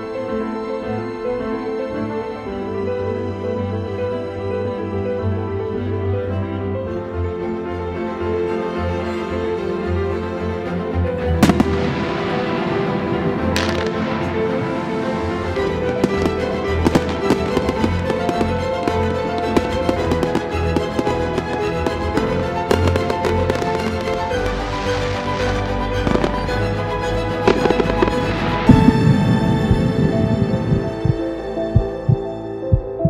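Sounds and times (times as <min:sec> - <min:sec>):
string music: 0:00.0 - 0:33.0
fireworks cracking: 0:11.4 - 0:26.7, 0:27.4 - 0:31.2.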